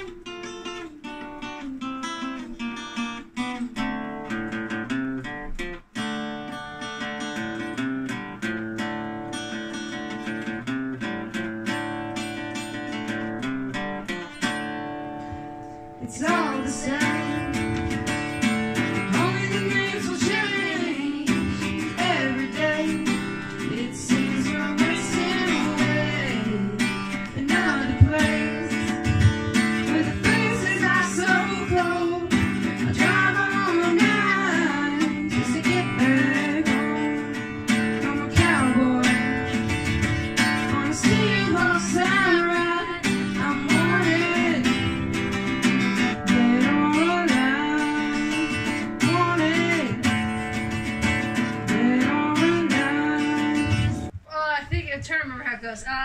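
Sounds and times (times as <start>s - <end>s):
acoustic guitar strumming chords: 0.0s - 54.2s
woman singing: 15.3s - 45.2s, 46.0s - 50.3s, 51.4s - 56.0s.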